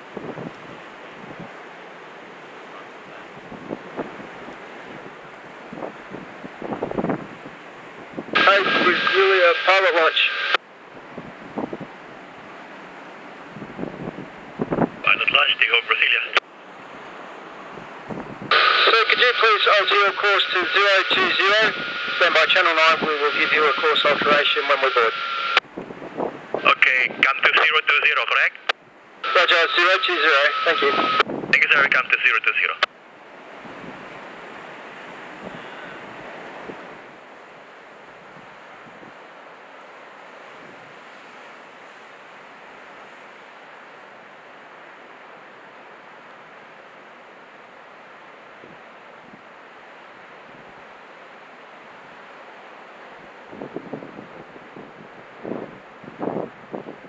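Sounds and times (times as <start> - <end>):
surf: 0.0 - 57.0
wind: 0.0 - 57.0
radio voice chatter: 8.4 - 10.6, 15.0 - 16.4, 18.5 - 25.6, 26.6 - 32.9
steady radio whistle: 8.4 - 10.6, 18.5 - 25.6, 29.2 - 32.9.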